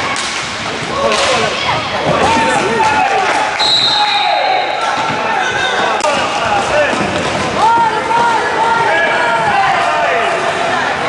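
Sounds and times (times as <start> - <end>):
stick and ball clacks: 0.0 - 1.5
high whistle blast: 3.6 - 4.8.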